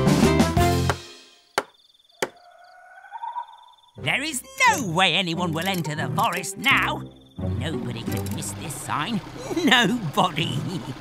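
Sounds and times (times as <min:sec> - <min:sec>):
faint high chirping: 0:01.4 - 0:04.8.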